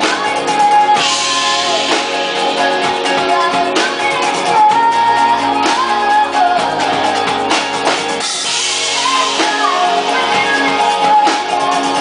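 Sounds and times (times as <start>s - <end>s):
rock band playing: 0.0s - 12.0s
woman singing: 0.0s - 12.0s.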